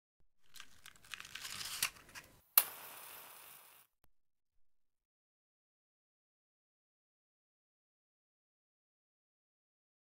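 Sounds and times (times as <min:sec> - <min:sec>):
matchbox rustling and clicking: 0:00.4 - 0:02.7
match struck and flaring: 0:01.1 - 0:03.9.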